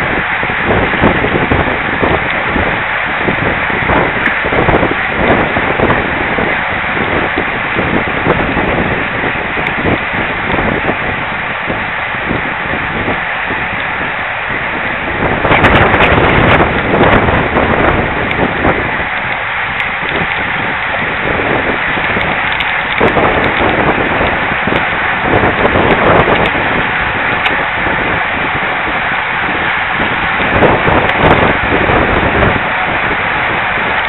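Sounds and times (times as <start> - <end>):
bike tyres rattling on road: 0.0 - 34.0
wind rushing over microphone: 0.0 - 34.0.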